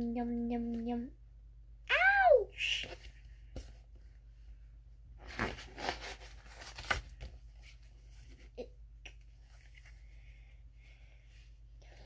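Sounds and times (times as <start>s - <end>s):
book pages turning: 5.2s - 8.5s.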